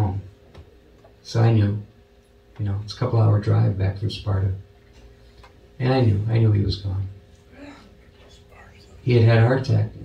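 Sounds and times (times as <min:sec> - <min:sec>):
steady low hum: 0:00.0 - 0:10.0
faint soft voices: 0:07.4 - 0:09.2
man speaking: 0:09.0 - 0:10.0.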